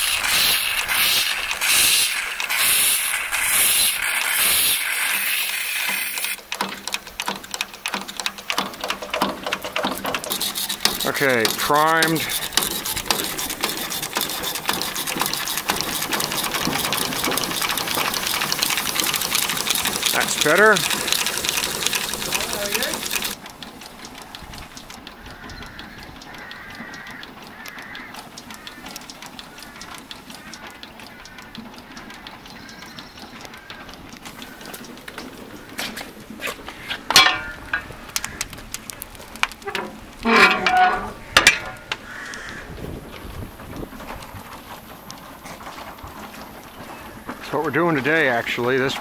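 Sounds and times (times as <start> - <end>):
loud steam hiss: 0.0 - 6.4
water gushing: 0.0 - 6.4, 10.2 - 23.4
steam pump running: 0.0 - 49.0
distant voices: 7.7 - 23.8, 25.1 - 49.0.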